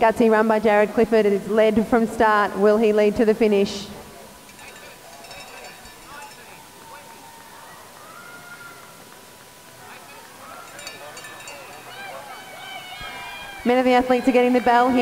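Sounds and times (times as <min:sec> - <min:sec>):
stadium background noise: 0:00.0 - 0:15.0
faint distant voices: 0:03.8 - 0:15.0
thin steady tone: 0:04.4 - 0:07.2, 0:09.8 - 0:12.6.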